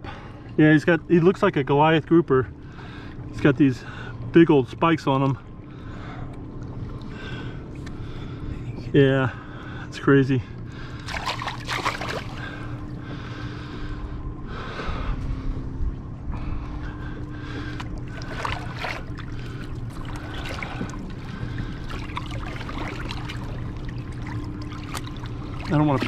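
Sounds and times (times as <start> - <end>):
low motor hum: 0.0 - 26.0
water splashing against boat: 0.0 - 26.0.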